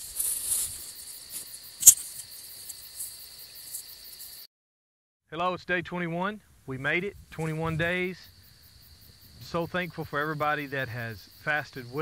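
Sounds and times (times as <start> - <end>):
crickets chirping: 0.0 - 4.5, 7.0 - 12.0
sharp click: 1.8 - 2.3.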